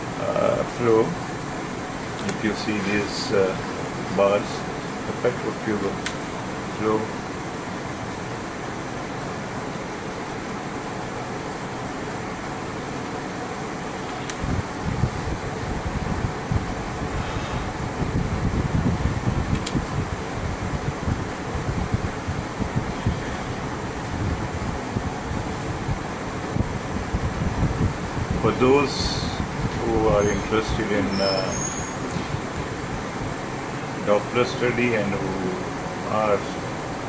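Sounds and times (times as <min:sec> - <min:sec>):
fan-like room noise: 0:00.0 - 0:37.0
irregular low rumbling: 0:14.3 - 0:28.5.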